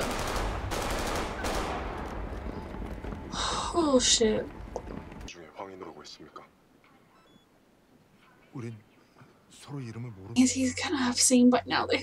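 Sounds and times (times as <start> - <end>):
rapid automatic gunfire: 0.0 - 2.1.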